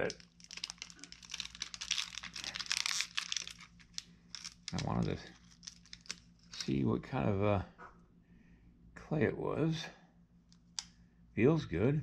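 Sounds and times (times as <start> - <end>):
plastic wrapping crinkling: 0.0 - 6.7.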